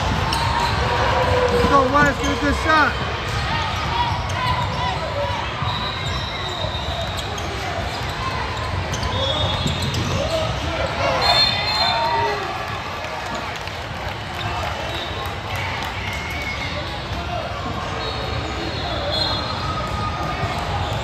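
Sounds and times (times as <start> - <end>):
sneaker squeaks: 0.0 - 12.4, 16.6 - 21.0.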